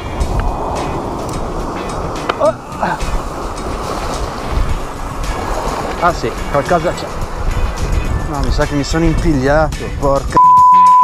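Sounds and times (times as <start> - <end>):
waves washing over rocks: 0.0 - 9.5
wind rumbling on microphone: 0.0 - 10.4.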